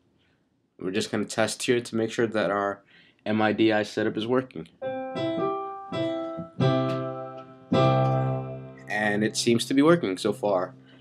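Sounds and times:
piano notes and chords: 4.8 - 11.0.

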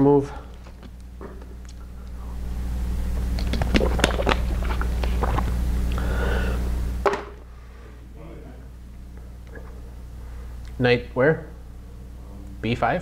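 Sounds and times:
plastic bottle crinkling: 3.3 - 5.5.

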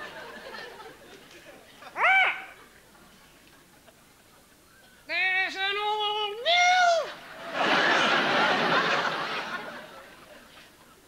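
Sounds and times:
audience laughter: 0.0 - 2.0, 7.2 - 10.8
puppet parrot squawk: 2.0 - 2.6.

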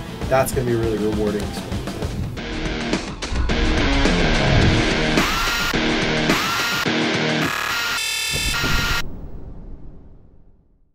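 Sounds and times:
heavy rock distorted guitar: 2.4 - 9.0.

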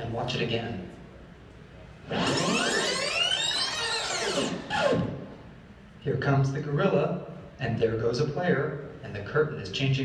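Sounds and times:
rewind whirring sweep: 2.0 - 5.3.

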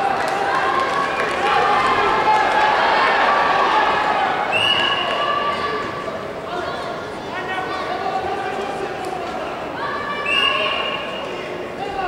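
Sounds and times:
crowd shouting in hall: 0.0 - 12.0.

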